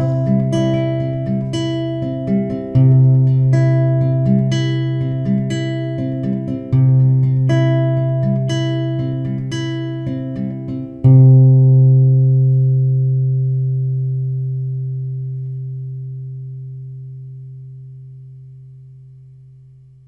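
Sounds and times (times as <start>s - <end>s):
low guitar note ringing: 0.0s - 4.6s
acoustic guitar notes plucked: 0.0s - 20.0s.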